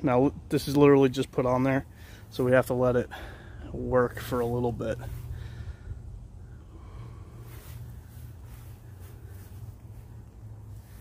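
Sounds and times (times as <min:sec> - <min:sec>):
steady low hum: 0:00.0 - 0:11.0
faint rustling handling noise: 0:07.4 - 0:11.0.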